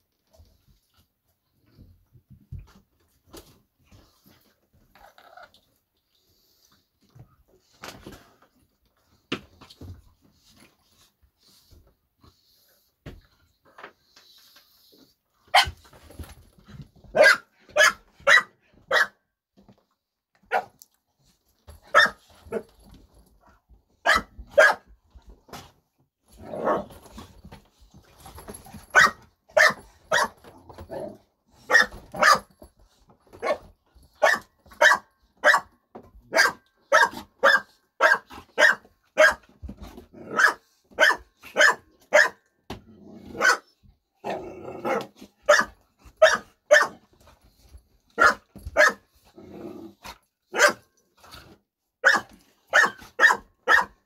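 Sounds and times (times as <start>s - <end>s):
dogs barking: 24.0s - 24.8s, 36.3s - 39.4s, 40.3s - 42.4s, 43.4s - 43.6s, 44.9s - 47.0s, 48.2s - 49.0s, 50.5s - 50.8s, 52.0s - 54.0s
dogs growling: 44.2s - 45.1s, 49.3s - 50.2s.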